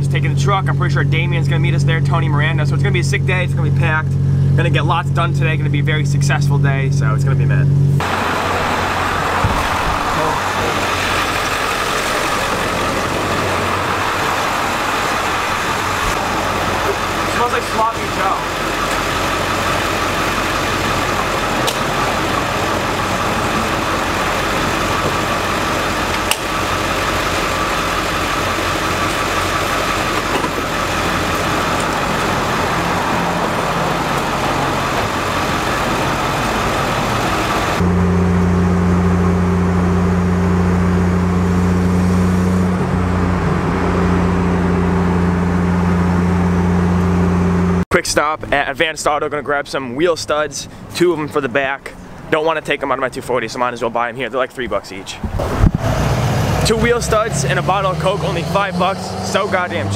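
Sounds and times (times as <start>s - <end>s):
traffic and engine noise: 0.0s - 59.9s
low engine drone inside car: 7.8s - 47.8s.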